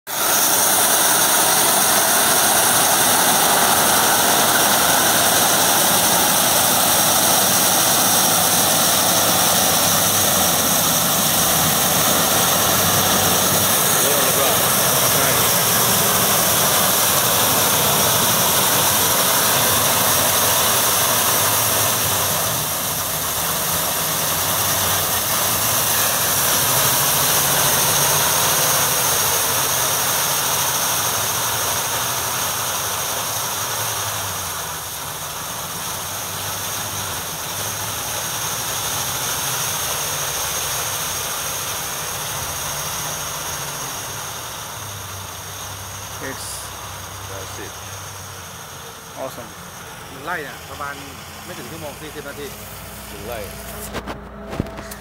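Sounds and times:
harvester cutting cane: 0.1s - 31.4s, 50.1s - 55.0s
tractor engine under load: 0.1s - 55.0s.

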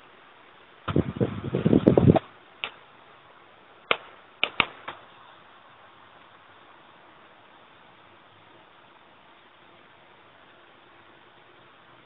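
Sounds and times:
steady hiss: 0.0s - 12.0s
sharp clicks: 3.9s - 5.0s.

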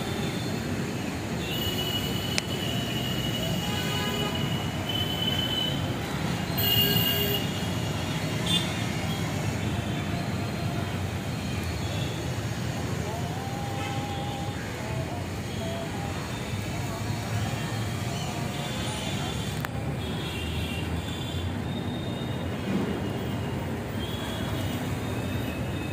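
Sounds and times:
traffic rumble: 0.0s - 25.9s
faint voices: 12.5s - 20.2s.

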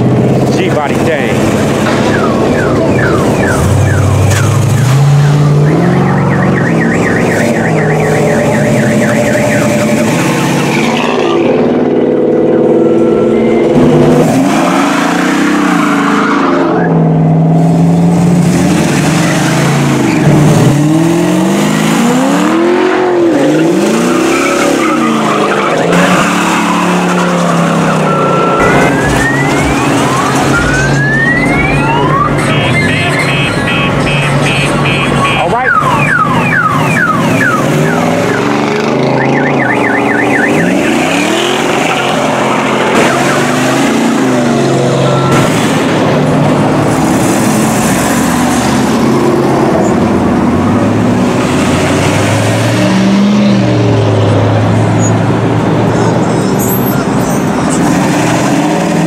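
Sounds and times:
car engines revving: 0.0s - 59.0s
tire squeals: 2.0s - 11.6s, 12.4s - 17.0s, 22.0s - 45.5s, 54.8s - 55.3s, 55.9s - 58.0s.

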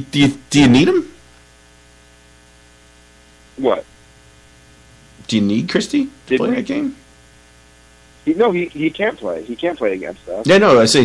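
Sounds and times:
electrical hum with buzz: 0.0s - 11.0s.

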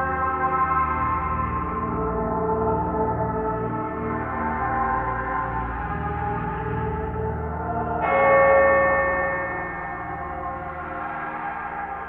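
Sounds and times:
low sustained drone: 4.0s - 12.0s
bell-like metallic strike: 8.0s - 11.9s.

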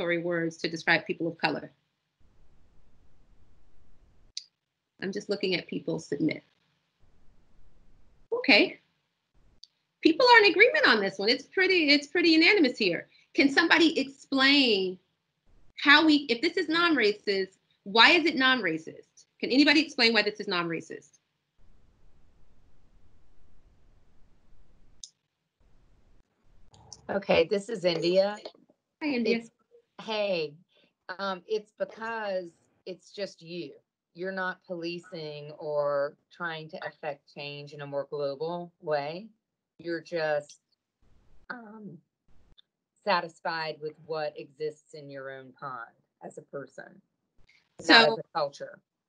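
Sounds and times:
faint microphone background noise: 26.8s - 30.5s, 47.8s - 48.7s
faint low room noise: 47.8s - 48.7s.

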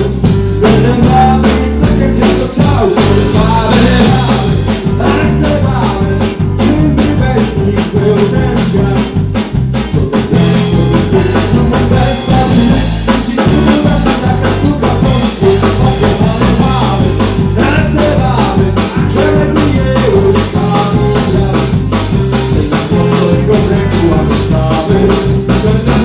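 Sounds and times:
drum kit beat: 0.0s - 26.0s
electric guitar: 0.0s - 26.0s
live band playing upbeat song: 0.0s - 26.0s.

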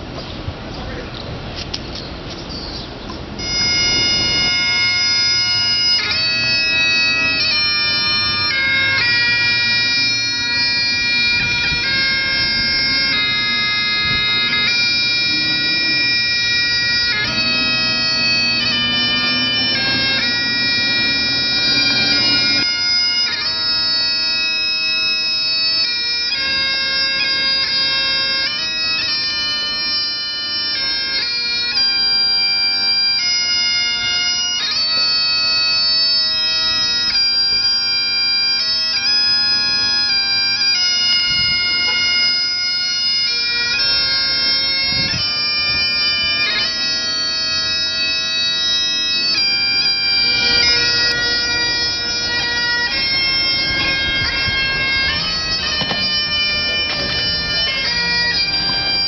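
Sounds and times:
bagpipes playing over drones: 3.2s - 59.0s.

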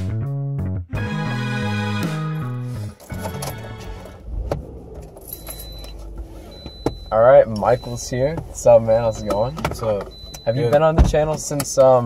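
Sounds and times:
background music: 0.0s - 4.3s
car idling from inside cabin: 3.8s - 12.0s.

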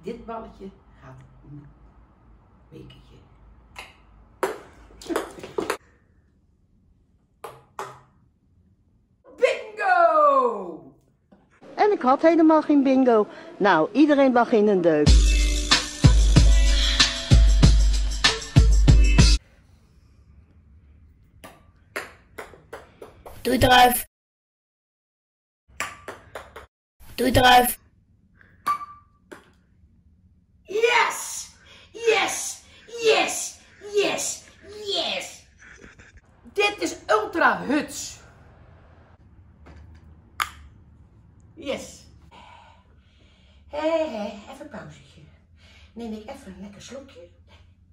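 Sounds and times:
ball striking hard surfaces: 4.4s - 5.8s, 7.4s - 8.1s, 25.8s - 26.7s, 28.6s - 29.6s.

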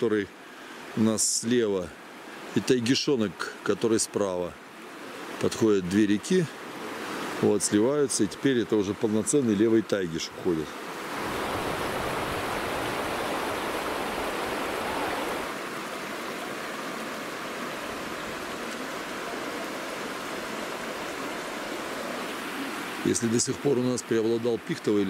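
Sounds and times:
river rushing over stones: 0.0s - 25.0s.

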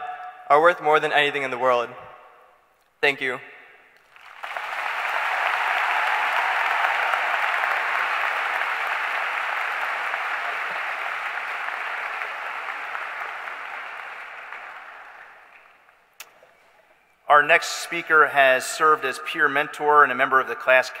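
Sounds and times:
large audience applauding: 4.0s - 15.9s.

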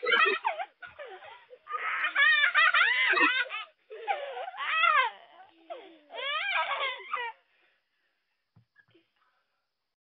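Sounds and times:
young child whining cry: 0.2s - 7.4s.

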